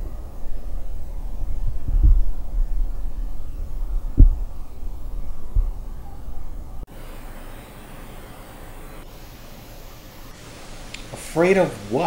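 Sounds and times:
dull low thumps: 0.0 - 6.9
low rumble: 0.0 - 6.9.

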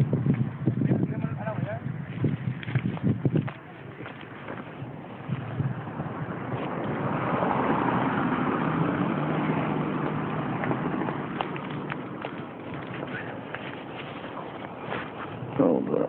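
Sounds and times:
car driving past: 4.5 - 15.0.

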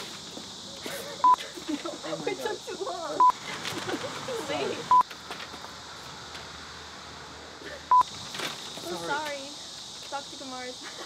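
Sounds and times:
short electronic beeps: 4.9 - 5.1.

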